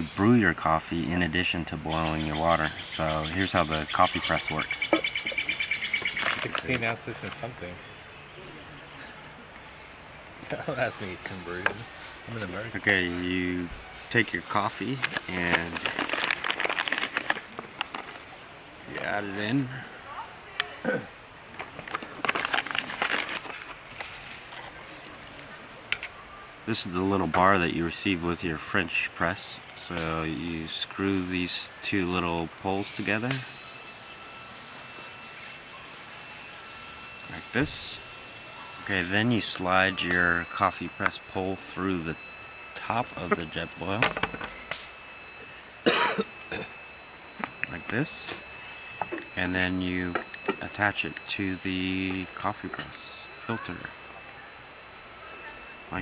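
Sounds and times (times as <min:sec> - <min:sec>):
paper bag crinkling and rustling: 0:06.2 - 0:07.5, 0:14.8 - 0:18.4, 0:21.6 - 0:25.5
man coughing: 0:45.8 - 0:46.8.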